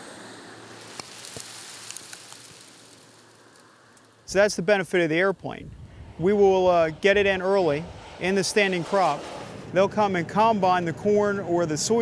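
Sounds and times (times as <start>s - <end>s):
faint steady hiss: 0.0s - 7.8s
seeds pattering on dry soil: 0.7s - 4.3s.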